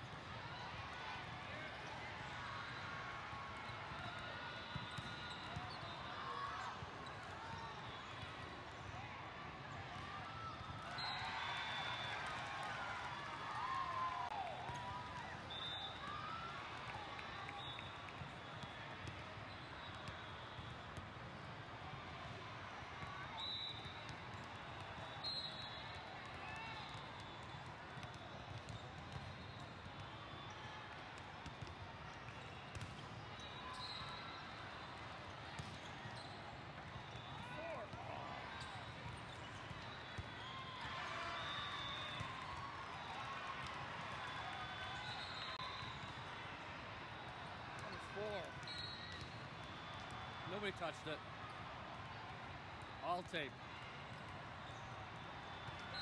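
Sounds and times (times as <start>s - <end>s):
volleyballs hit and bouncing: 26.0s - 30.2s, 30.9s - 33.4s.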